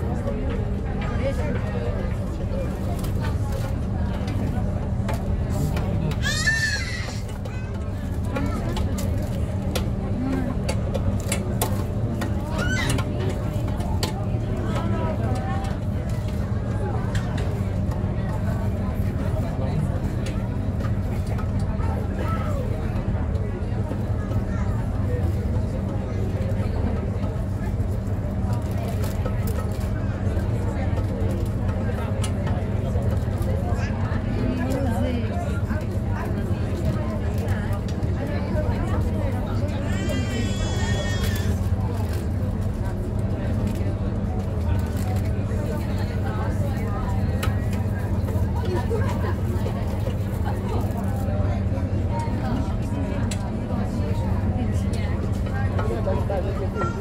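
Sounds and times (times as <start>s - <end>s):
boat engine drone: 0.0s - 57.0s
faint passenger chatter: 0.0s - 57.0s.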